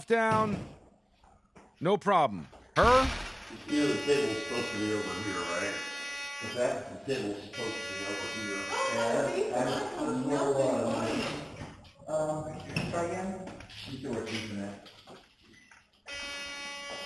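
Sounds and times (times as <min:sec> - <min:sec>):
voices: 0:02.8 - 0:14.8
metal detector buzzing alarm: 0:03.6 - 0:06.8, 0:07.6 - 0:09.3, 0:16.0 - 0:17.0.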